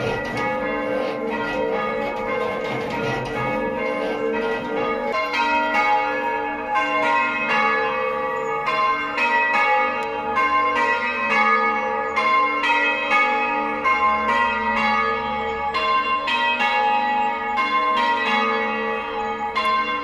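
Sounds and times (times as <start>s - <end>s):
church bells ringing in sequence: 0.0s - 20.0s.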